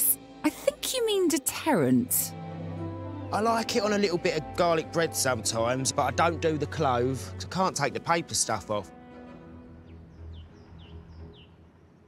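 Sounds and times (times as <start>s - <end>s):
soft background music: 0.0s - 12.0s
bird chirping: 9.6s - 12.0s.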